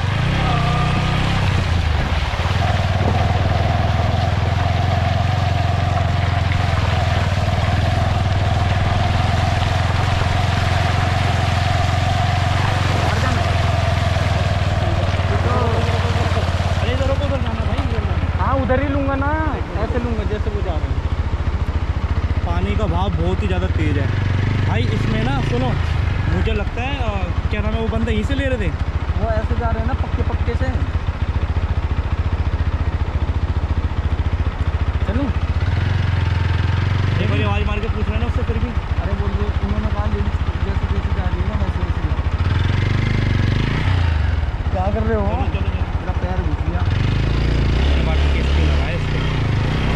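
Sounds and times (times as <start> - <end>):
indistinct voices: 0.0 - 1.6, 2.2 - 21.0
motorcycle engine running: 0.0 - 49.9.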